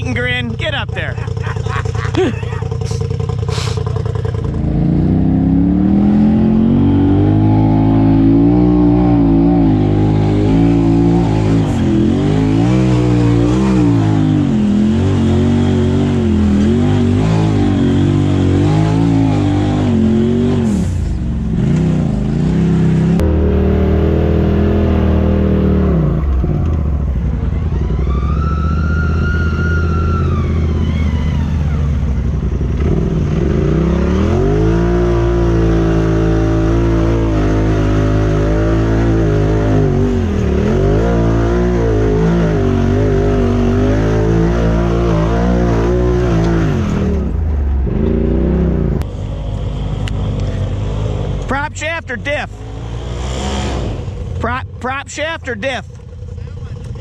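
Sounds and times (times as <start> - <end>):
off-road vehicle engines revving: 0.0 - 57.0.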